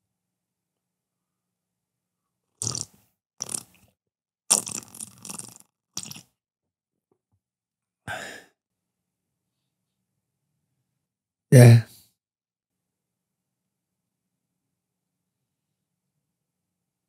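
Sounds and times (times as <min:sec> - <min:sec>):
man sipping from a cup: 0:02.6 - 0:03.9, 0:04.5 - 0:06.2
breaths: 0:08.1 - 0:08.6.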